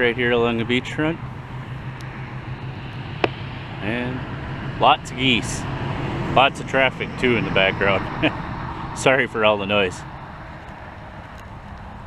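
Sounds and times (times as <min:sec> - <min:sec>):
highway traffic drone: 0:00.0 - 0:12.0.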